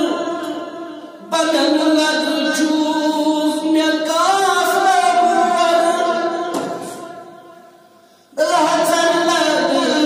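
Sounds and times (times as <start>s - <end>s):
man singing unaccompanied: 1.2s - 6.6s, 8.4s - 10.0s.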